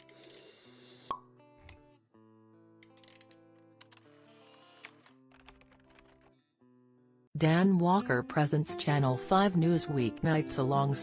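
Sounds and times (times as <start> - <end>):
background music with held notes: 1.1 - 11.0.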